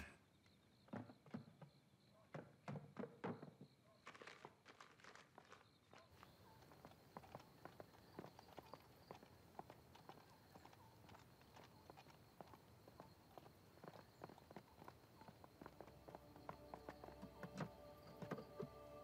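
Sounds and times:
faint footsteps and taps: 0.9s - 19.0s.

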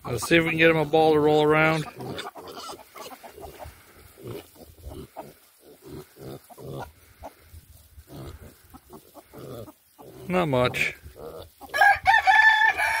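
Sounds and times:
pigs grunting: 0.0s - 11.8s.

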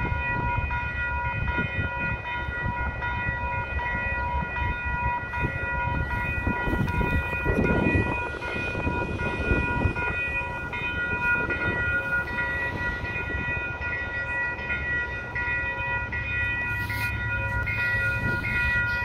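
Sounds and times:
crossing warning bell ringing: 0.0s - 19.0s.

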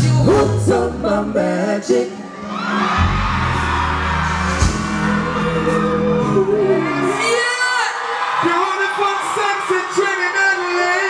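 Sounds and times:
live reggae band playing: 0.0s - 7.3s.

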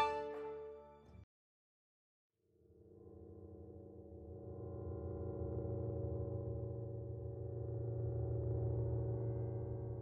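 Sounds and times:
low electronic drone: 3.8s - 10.0s.

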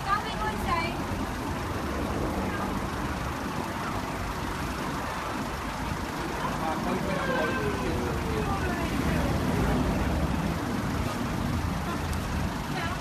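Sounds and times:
city street traffic: 0.0s - 13.0s
people's voices: 0.0s - 13.0s.

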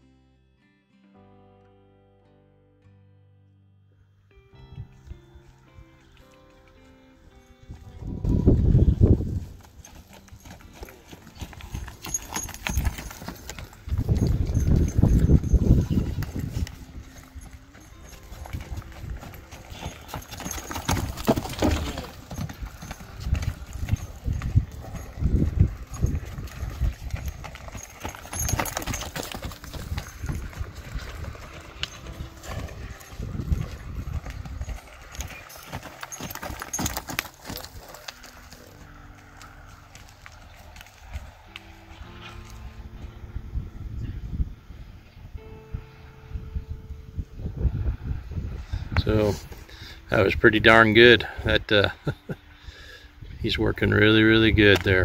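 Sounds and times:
horse hoofbeats on dirt: 4.9s - 43.3s, 53.4s - 55.0s.

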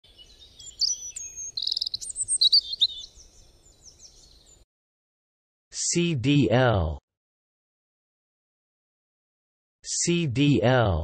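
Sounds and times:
songbirds chirping and singing: 0.0s - 4.6s.

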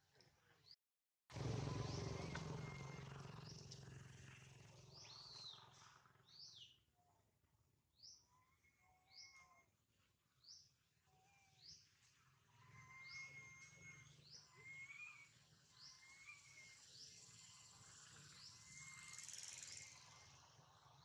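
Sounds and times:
thin steady whistles: 1.4s - 3.6s, 8.4s - 9.8s, 12.5s - 21.0s
bird high rising chirp: 1.4s - 3.9s, 4.9s - 6.8s, 7.9s - 9.8s, 10.4s - 21.0s.

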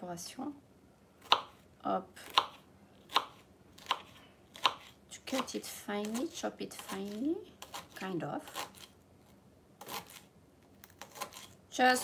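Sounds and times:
knife chopping on wooden board: 1.2s - 1.6s, 2.2s - 8.8s.

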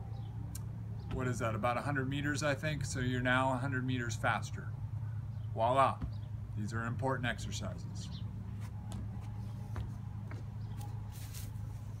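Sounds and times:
steady low hum: 0.0s - 12.0s
footsteps on wooden deck: 5.9s - 6.4s, 8.1s - 12.0s.

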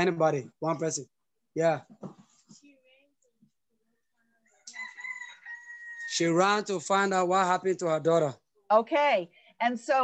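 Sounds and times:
rooster crowing: 4.4s - 6.4s.

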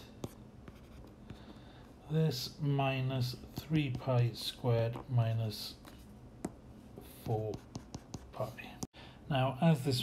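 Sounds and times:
stylus scratching on screen: 7.1s - 8.8s.

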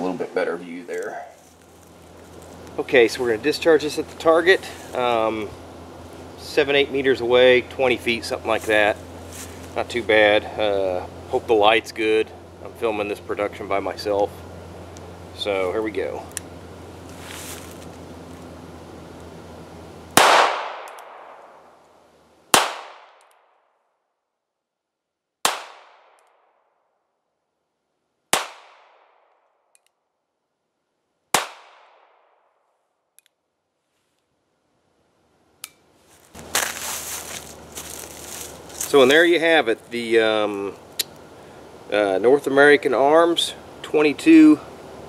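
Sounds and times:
revolver shots echoing: 20.2s - 21.6s.

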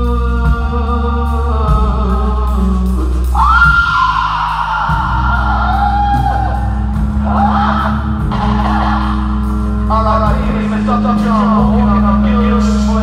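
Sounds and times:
live rock band playing: 0.0s - 13.0s.

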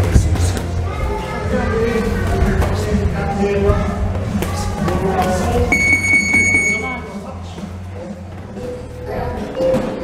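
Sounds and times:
music: 0.0s - 10.0s
high electronic beep: 5.7s - 7.1s.

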